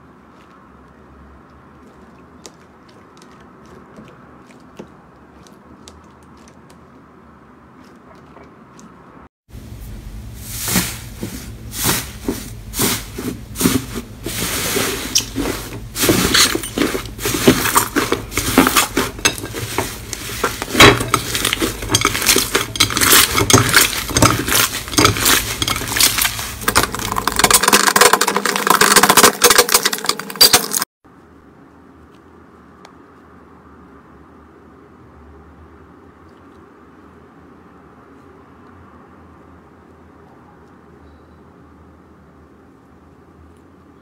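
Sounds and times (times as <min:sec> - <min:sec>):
foam slime crackling and popping: 0:10.6 - 0:30.6.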